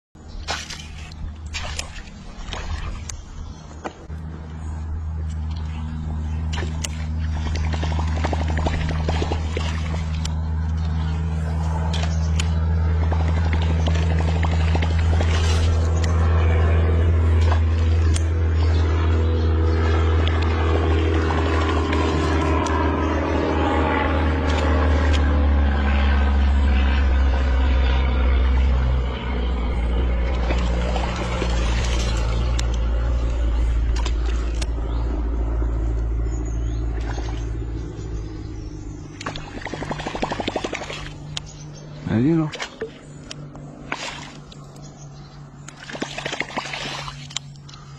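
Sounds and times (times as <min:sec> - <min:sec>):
low engine-like hum: 0:00.1 - 0:47.9.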